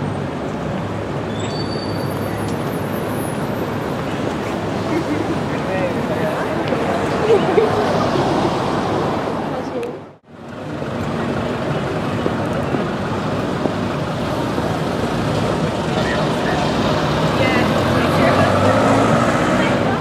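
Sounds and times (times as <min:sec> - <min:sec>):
traffic noise: 0:00.0 - 0:20.0
indistinct talk of people: 0:04.4 - 0:08.0.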